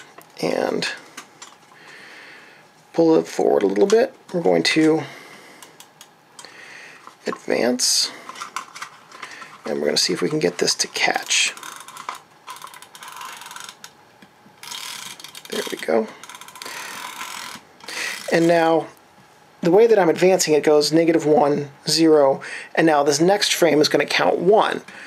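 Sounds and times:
camera film winding ratchet clicks: 0:11.6 - 0:13.9, 0:14.6 - 0:18.4.

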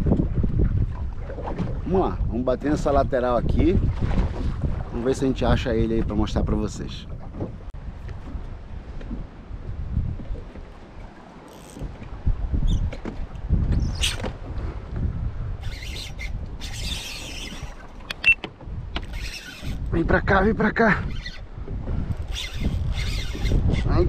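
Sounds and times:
wind rumbling on microphone: 0:00.0 - 0:24.0.

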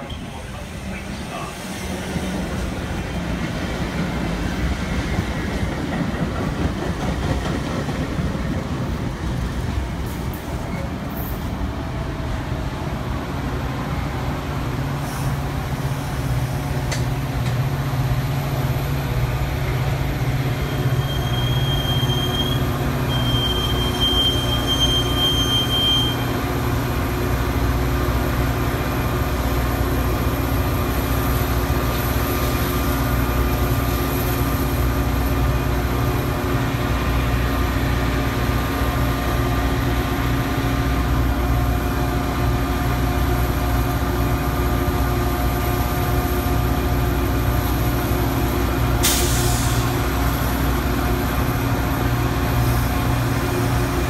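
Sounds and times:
diesel locomotive engine drone: 0:00.0 - 0:54.0
brief high squeal: 0:20.6 - 0:26.3
air hiss: 0:49.0 - 0:50.0.

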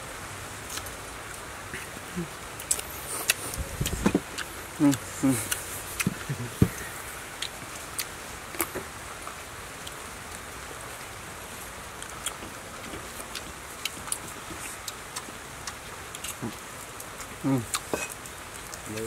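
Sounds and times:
steady background hiss: 0:00.0 - 0:19.0
chewing clicks and smacks: 0:02.6 - 0:06.3, 0:12.0 - 0:19.0.

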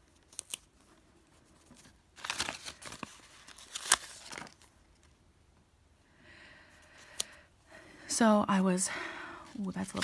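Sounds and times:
sticker sheet crinkling: 0:01.6 - 0:04.7, 0:09.7 - 0:10.0.

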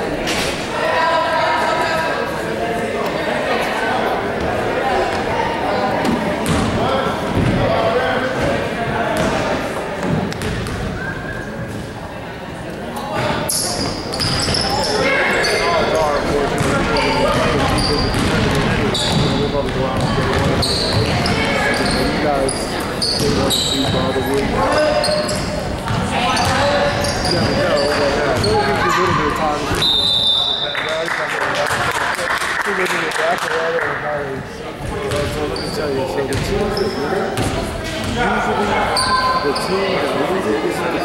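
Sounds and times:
chatter of players and spectators: 0:00.0 - 0:41.0
sneakers squeaking: 0:06.0 - 0:07.7, 0:08.3 - 0:12.1, 0:12.9 - 0:30.8, 0:34.8 - 0:40.0
basketball bouncing on hardwood floor: 0:10.0 - 0:10.8.

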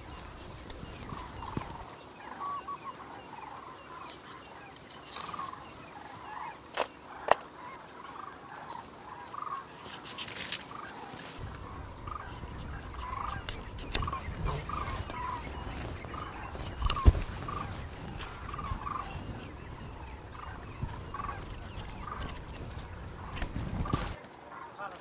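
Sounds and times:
fowl gobbling: 0:01.0 - 0:09.8, 0:10.7 - 0:24.8.

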